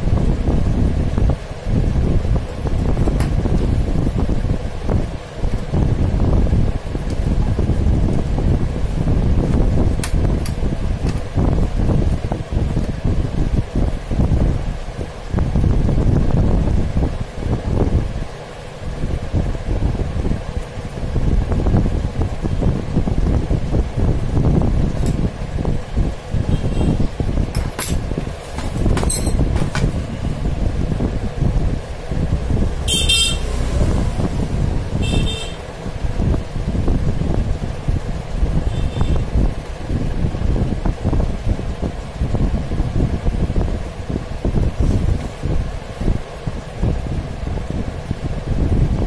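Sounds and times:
low rumbling noise: 0:00.0 - 0:49.0.

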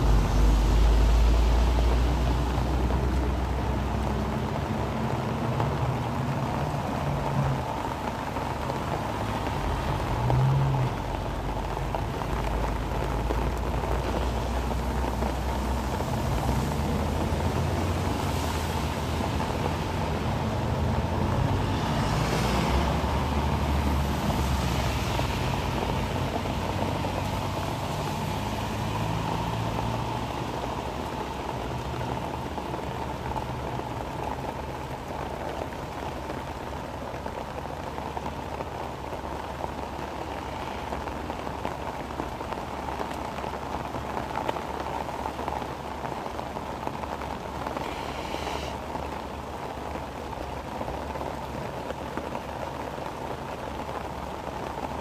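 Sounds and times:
heavy rain: 0:00.0 - 0:55.0
vehicle engine rumble: 0:00.0 - 0:55.0.

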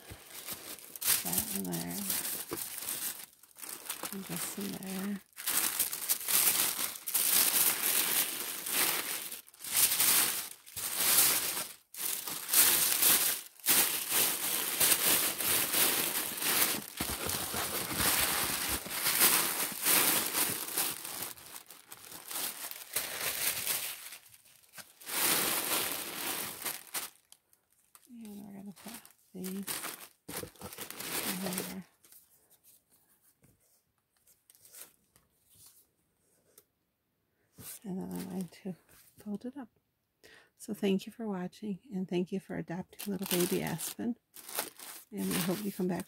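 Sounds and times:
tissue paper rustling and crinkling: 0:00.0 - 0:27.4, 0:28.0 - 0:32.8, 0:37.6 - 0:39.2, 0:43.0 - 0:46.0.

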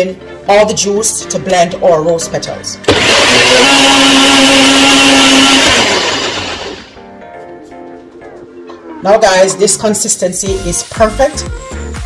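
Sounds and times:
background music: 0:00.0 - 0:12.0
blender running: 0:02.8 - 0:07.0.

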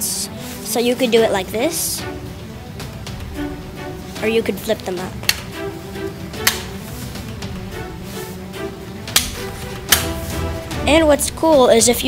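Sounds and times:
background music: 0:00.0 - 0:12.0
gun sights clicking: 0:06.4 - 0:06.7, 0:09.1 - 0:10.2.

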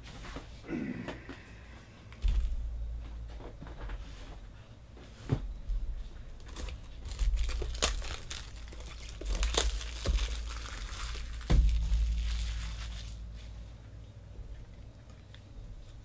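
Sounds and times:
plastic wrap crinkling: 0:06.4 - 0:13.7
box thump: 0:11.4 - 0:12.6.

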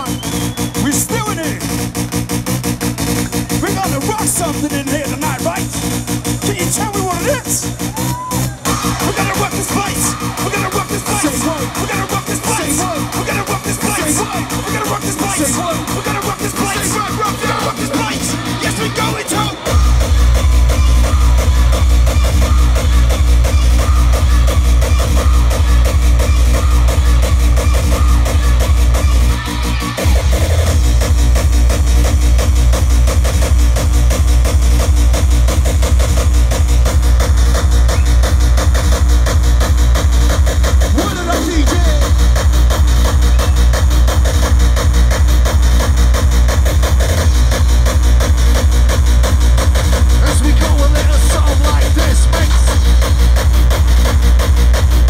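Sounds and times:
fast heavy kick drum: 0:00.0 - 0:55.0
hardcore gabber dance music: 0:00.0 - 0:55.0.

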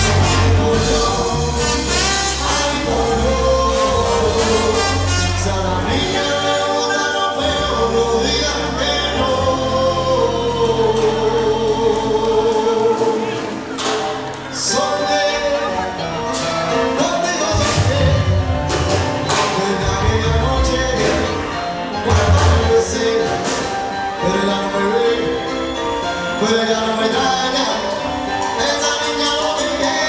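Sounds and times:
electric bass: 0:00.0 - 0:06.5
voices singing long notes: 0:00.0 - 0:13.8
drum kit: 0:00.0 - 0:14.6, 0:15.4 - 0:24.8
percussion: 0:00.0 - 0:24.8
bass: 0:00.0 - 0:30.0
congas: 0:00.0 - 0:30.0
live salsa band playing: 0:00.0 - 0:30.0.

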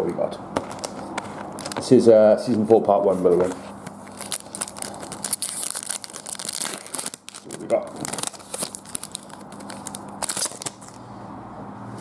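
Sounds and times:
wrapper torn and crinkled: 0:00.6 - 0:01.9, 0:04.0 - 0:11.0.

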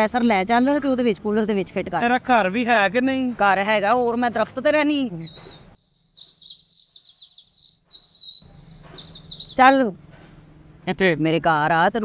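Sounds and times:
small birds chirping: 0:04.8 - 0:10.7.

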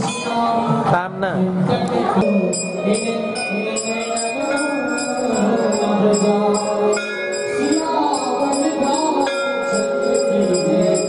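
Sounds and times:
mantra chanting with music: 0:00.4 - 0:11.0.

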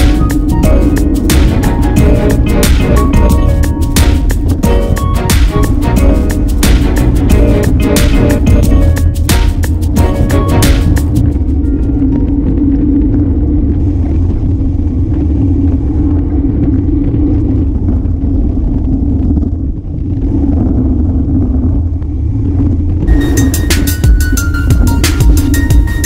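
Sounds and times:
music: 0:00.0 - 0:14.3, 0:23.1 - 0:26.0
wind buffeting: 0:00.0 - 0:26.0.

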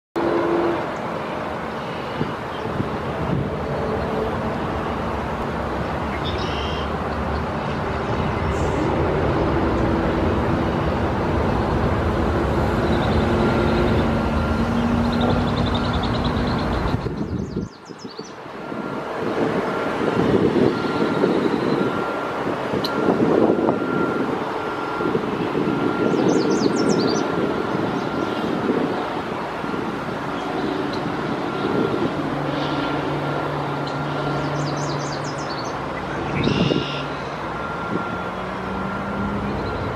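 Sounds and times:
road traffic noise: 0:00.2 - 0:39.9.

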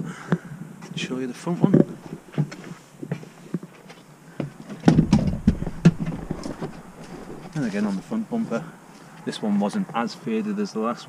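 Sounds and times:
footsteps: 0:01.7 - 0:09.1
low rumble: 0:04.9 - 0:08.1.

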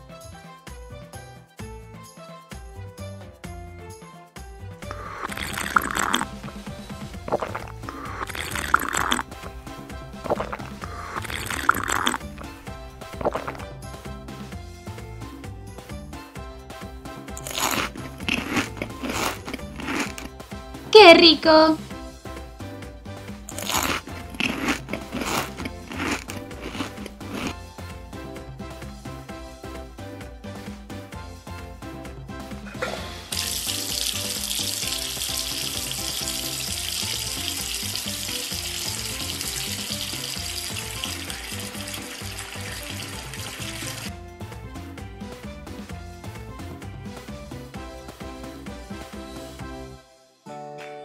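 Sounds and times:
light background music: 0:00.0 - 0:51.0
crunchy eating bites: 0:04.9 - 0:06.6, 0:07.2 - 0:09.3, 0:10.1 - 0:13.7, 0:17.4 - 0:20.3, 0:23.5 - 0:27.6
water running from tap: 0:04.9 - 0:13.7, 0:32.8 - 0:44.1.

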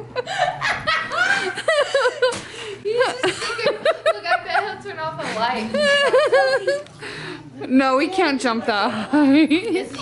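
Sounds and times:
people laughing: 0:00.0 - 0:07.1, 0:08.8 - 0:10.0.

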